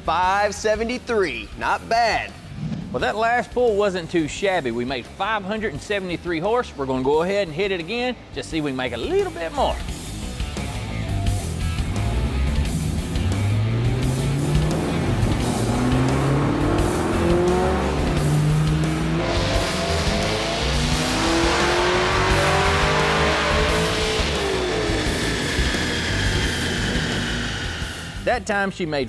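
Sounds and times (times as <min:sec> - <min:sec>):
car engine revving at full throttle: 0:10.0 - 0:28.3.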